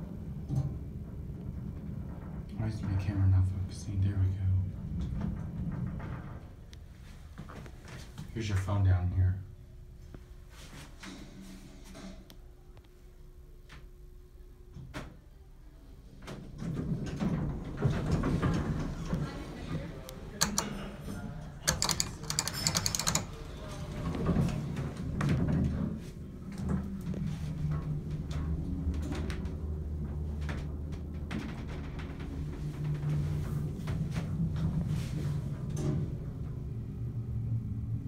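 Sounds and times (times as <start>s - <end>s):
elevator machinery hum: 0.0s - 38.0s
elevator doors sliding open: 16.4s - 38.0s
clicks: 20.4s - 20.8s.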